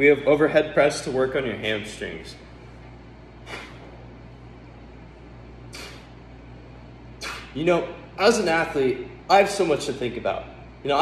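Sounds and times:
steady low hum: 0.0 - 11.0
person breathing out in puffs: 3.4 - 3.9, 5.7 - 6.2.

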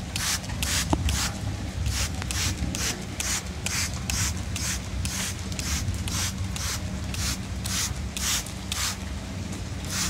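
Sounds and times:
steady low hum: 0.0 - 10.0
spray bottle misting water: 0.1 - 1.3, 1.9 - 9.0.

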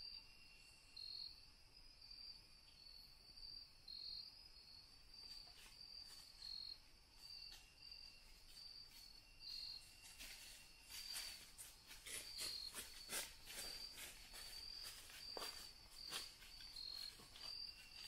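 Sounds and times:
crickets chirping: 0.0 - 18.0
rustling in dry leaf litter: 9.8 - 18.0.

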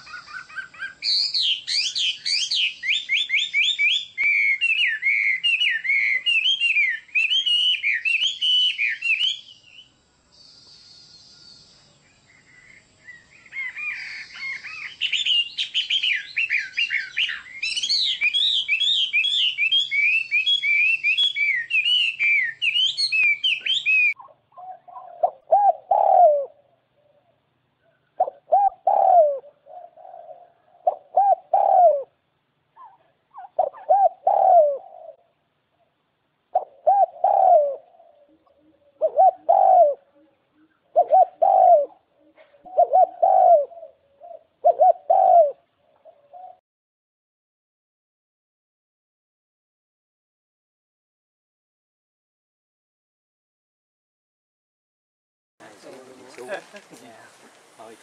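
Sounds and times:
lower bird call: 0.0 - 46.6.

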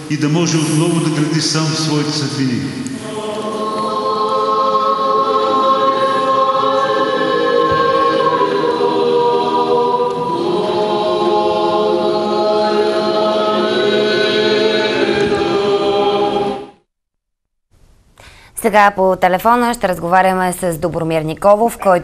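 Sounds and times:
church choir chanting a cappella: 0.0 - 16.8.

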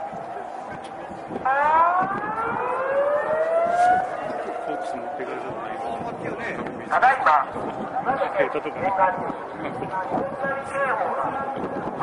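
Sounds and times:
steady siren tone: 0.0 - 6.2
rising two-tone siren wail: 1.2 - 6.0.

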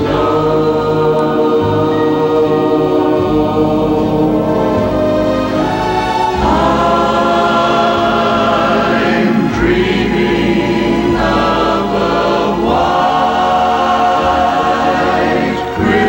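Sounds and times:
choir singing held chords: 0.0 - 16.0.

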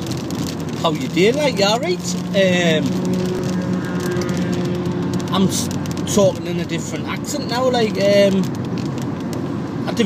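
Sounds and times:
engine and road hum: 0.0 - 10.0
man speaking: 0.8 - 3.0, 5.3 - 8.5.

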